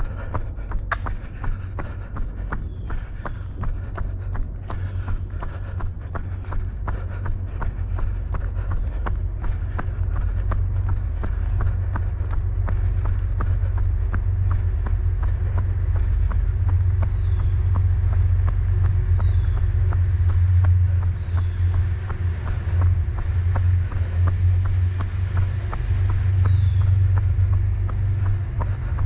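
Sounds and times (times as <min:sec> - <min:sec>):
steady low rumble: 0:00.0 - 0:29.0.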